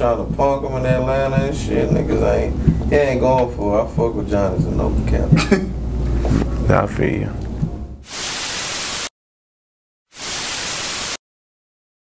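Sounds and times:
television static hiss: 0:08.1 - 0:09.1, 0:10.2 - 0:11.2.

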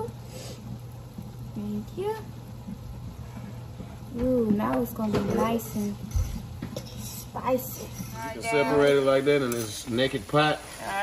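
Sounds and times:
corn sizzling in butter: 0:00.0 - 0:11.0.

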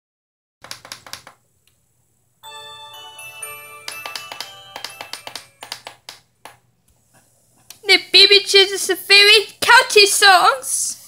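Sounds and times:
plinking intro music from tv: 0:02.4 - 0:05.7.

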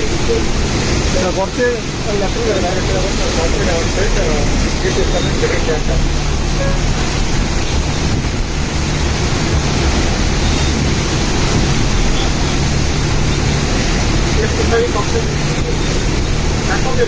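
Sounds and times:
strong wind buffeting microphone: 0:00.0 - 0:17.0.

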